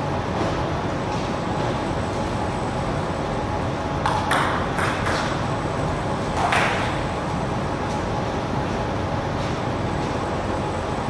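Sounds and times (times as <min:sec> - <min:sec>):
low hall hum: 0:00.0 - 0:11.0
table tennis ball bouncing: 0:04.0 - 0:05.3.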